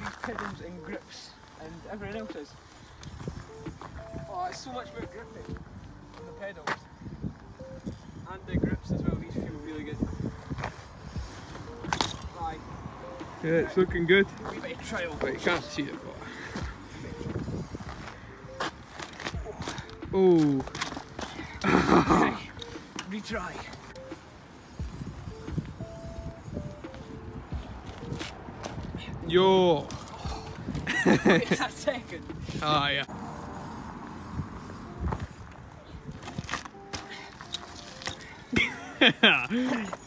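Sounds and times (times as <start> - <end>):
bike rolling on tarmac: 0.0 - 40.0.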